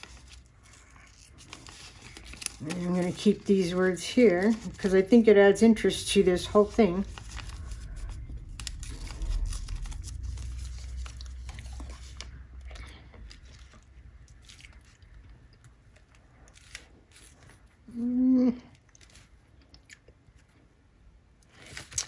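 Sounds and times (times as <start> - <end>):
paper rustling and crinkling: 0.0 - 15.1, 15.7 - 17.8, 21.5 - 22.0
low rumble: 4.5 - 15.6.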